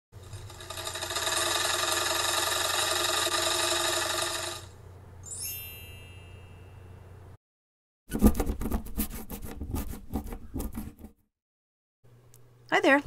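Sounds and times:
embroidery machine stitching: 0:00.2 - 0:04.7
bright chime: 0:05.2 - 0:07.0.

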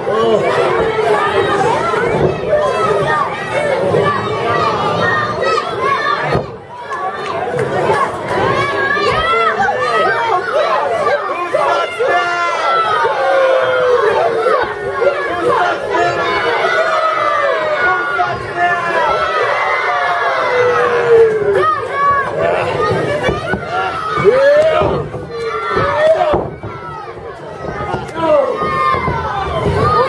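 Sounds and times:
crowd shouting and cheering: 0:00.0 - 0:30.0.

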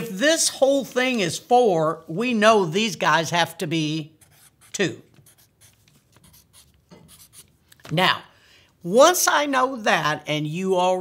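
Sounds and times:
marker pen strokes on paper: 0:04.1 - 0:07.6.

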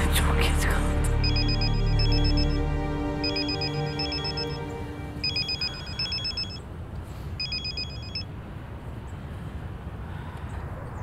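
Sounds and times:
soft background music: 0:00.0 - 0:06.6
phone ringtone trill: 0:01.2 - 0:06.6, 0:07.4 - 0:08.3.

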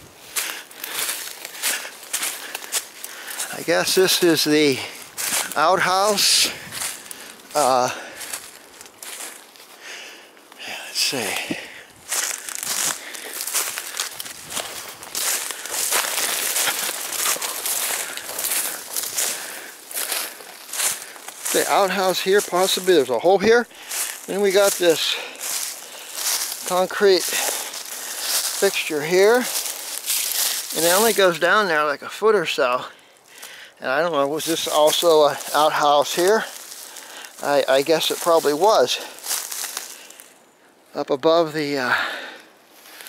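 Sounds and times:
footsteps crunching dry leaves: 0:00.0 - 0:40.5, 0:41.7 - 0:43.0.

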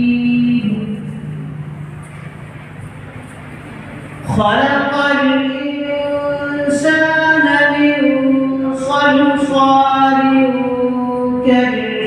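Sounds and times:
low noise of crowded hall: 0:00.0 - 0:12.0
man reciting: 0:04.2 - 0:12.0.

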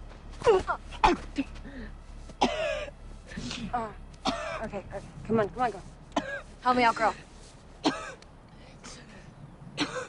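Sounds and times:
woman coughing and clearing throat: 0:02.4 - 0:04.8, 0:06.2 - 0:06.5, 0:07.8 - 0:08.2, 0:09.8 - 0:10.0.

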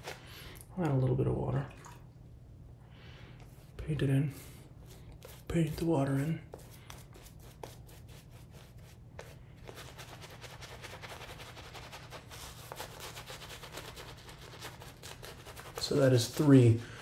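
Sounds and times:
shaving brush swishing lather: 0:04.8 - 0:16.7.

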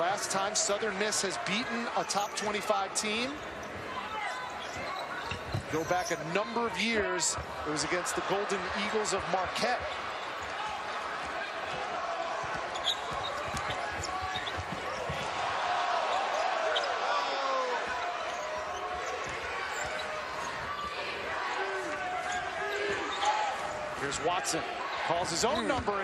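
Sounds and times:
crowd noise: 0:00.0 - 0:26.0
sneakers squeaking: 0:03.4 - 0:07.9, 0:08.7 - 0:24.1, 0:25.3 - 0:26.0.

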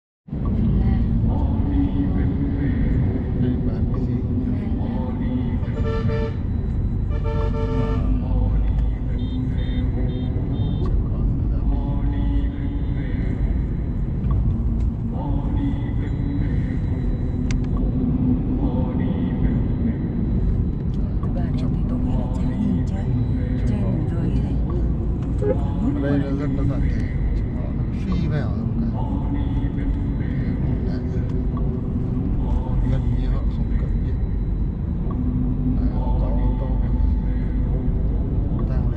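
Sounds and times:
car engine and tyre rumble: 0:00.3 - 0:38.9
vehicle horn: 0:05.6 - 0:08.4, 0:09.1 - 0:10.9, 0:25.4 - 0:25.8.

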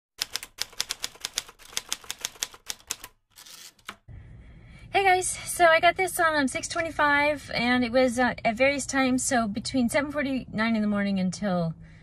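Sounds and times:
rapid sharp clicks: 0:00.2 - 0:03.2.

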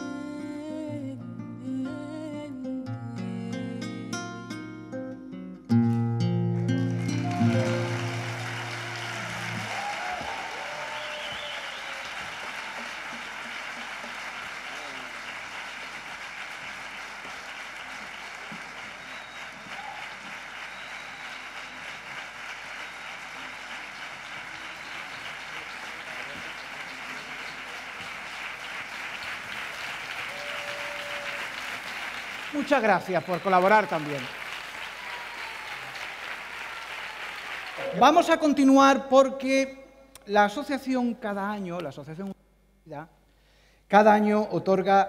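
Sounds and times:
acoustic guitar chord ringing: 0:00.0 - 0:09.7
audience applauding: 0:06.6 - 0:38.5.

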